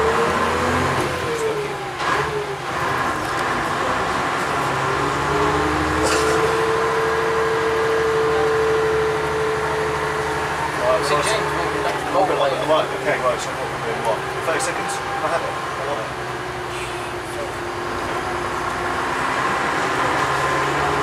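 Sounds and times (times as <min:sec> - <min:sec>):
bus diesel engine pulling away: 0:00.0 - 0:21.0.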